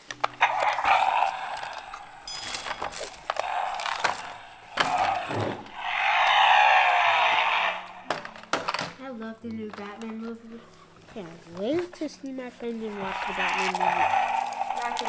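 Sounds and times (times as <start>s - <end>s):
plastic toy clicking and rattling: 0.0s - 5.5s, 8.0s - 10.4s, 11.2s - 15.0s.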